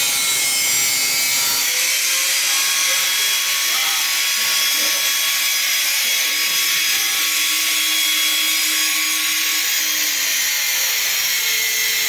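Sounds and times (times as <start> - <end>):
angle grinder cutting metal pipe: 0.0 - 12.0.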